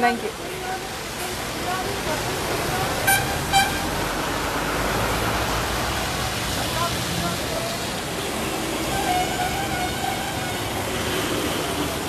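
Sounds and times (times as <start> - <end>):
traffic noise: 0.0 - 12.0
car horn toots: 3.0 - 3.9.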